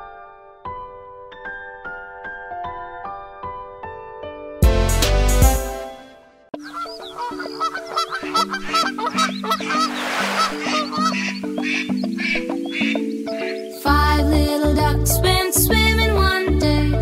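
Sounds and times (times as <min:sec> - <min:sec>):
gentle instrumental music: 0:00.0 - 0:17.0.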